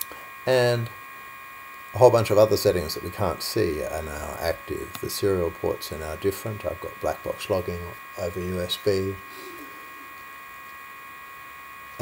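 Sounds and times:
faint hiss: 0.0s - 1.0s
high steady tones whine: 0.0s - 12.0s.

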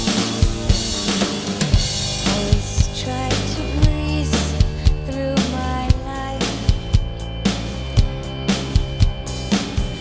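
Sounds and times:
electronic drum kick and snare hits: 0.0s - 10.0s
rock guitar band backing: 0.0s - 10.0s.

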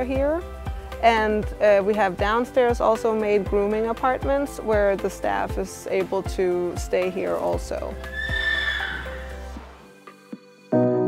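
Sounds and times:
background music: 0.0s - 11.0s
horse whinnying: 8.0s - 9.8s.

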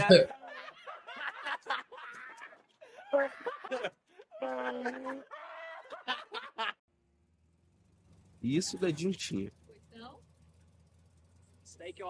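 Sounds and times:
man chuckling: 1.8s - 6.7s.

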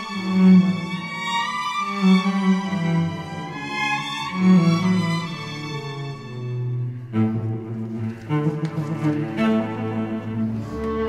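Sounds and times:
solo cello bowed melody: 0.0s - 11.0s.

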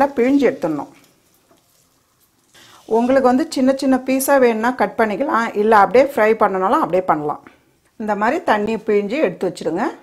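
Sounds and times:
water trickling: 0.0s - 3.8s.

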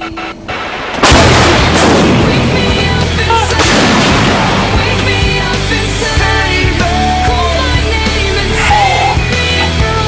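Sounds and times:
artillery gun firing: 0.6s - 5.6s
rock music with bass line: 1.3s - 10.0s.

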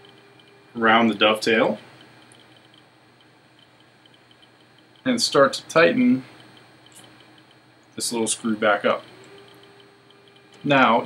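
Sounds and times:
faint high-pitched ticks: 0.0s - 0.6s, 1.8s - 5.5s, 6.2s - 11.0s.

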